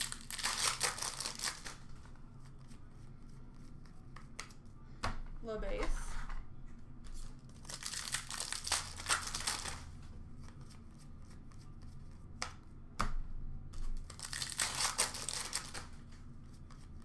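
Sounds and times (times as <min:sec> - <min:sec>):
wrapper crinkling and tearing: 0:00.0 - 0:01.8, 0:07.6 - 0:09.8, 0:14.0 - 0:15.9
cards rustling: 0:00.0 - 0:02.8, 0:07.2 - 0:11.9, 0:14.0 - 0:16.0.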